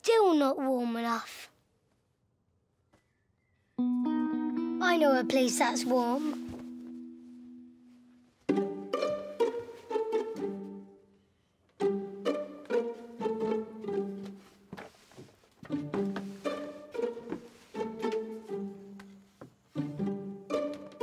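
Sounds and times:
pizzicato string music: 3.8 - 11.2, 11.8 - 21.0.

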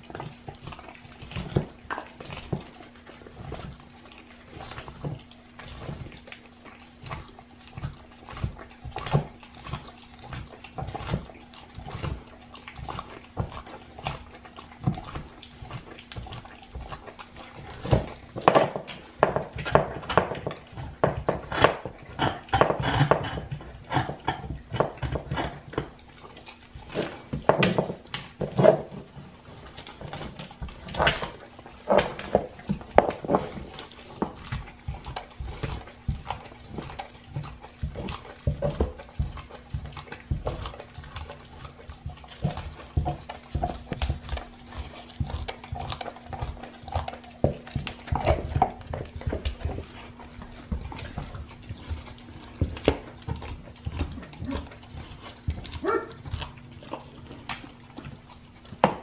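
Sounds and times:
dog chewing meat and bone: 0.0 - 59.0.

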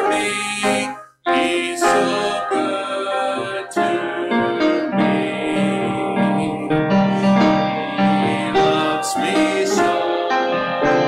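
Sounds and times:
piano sustained chords: 0.0 - 11.0
voices singing: 0.0 - 11.0.

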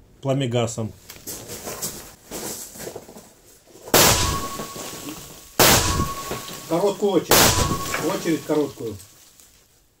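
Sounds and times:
rifle shot with echoing tail: 4.0 - 4.8, 5.6 - 6.6, 7.3 - 8.4.

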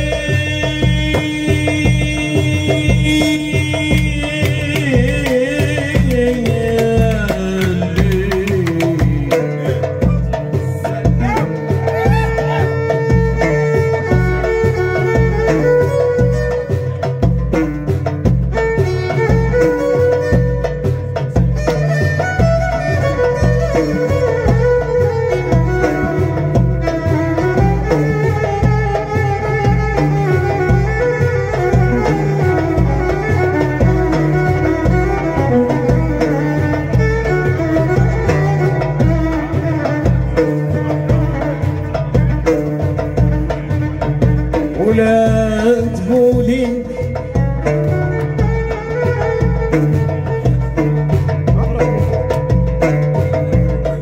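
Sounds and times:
driving percussion beat: 0.0 - 54.0
violin melody: 2.1 - 17.6, 18.4 - 54.0.

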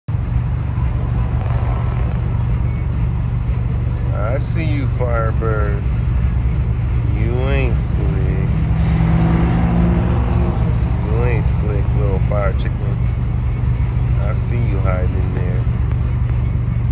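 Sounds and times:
car engine idling: 0.1 - 16.9
people's voices: 4.0 - 5.9, 7.1 - 13.1, 14.2 - 15.8.

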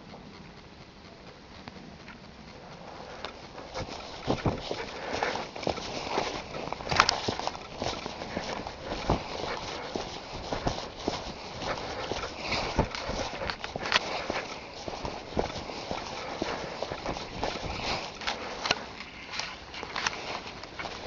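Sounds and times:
footsteps through dry leaves: 3.4 - 21.0.

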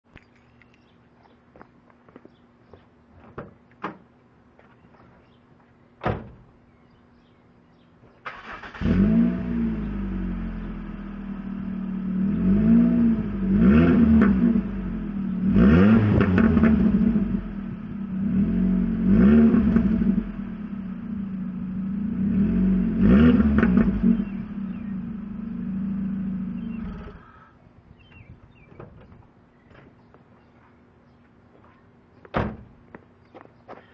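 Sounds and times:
car engine idling and revving: 8.4 - 27.3.

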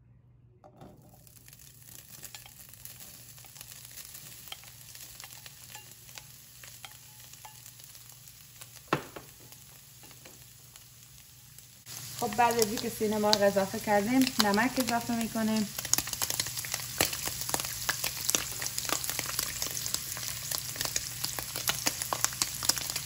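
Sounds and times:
chicken sizzling in oil: 1.1 - 23.0.

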